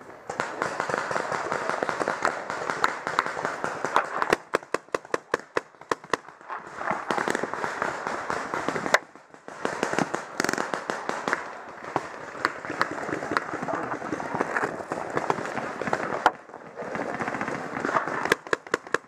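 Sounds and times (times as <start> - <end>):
paintball markers firing: 0.2 - 19.0.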